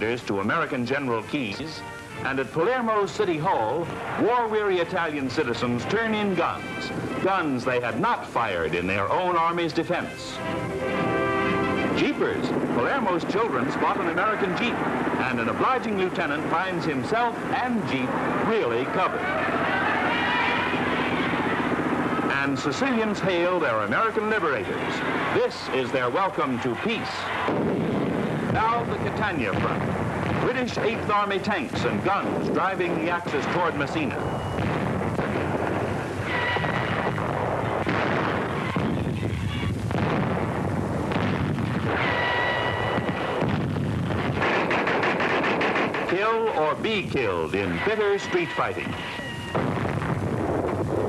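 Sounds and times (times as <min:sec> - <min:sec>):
faint voices: 0:00.0 - 0:34.6, 0:35.3 - 0:41.1, 0:45.8 - 0:49.6
high steady whistling tones: 0:08.5 - 0:39.8, 0:41.8 - 0:44.2, 0:46.0 - 0:49.7
artillery and gunfire: 0:10.8 - 0:51.0.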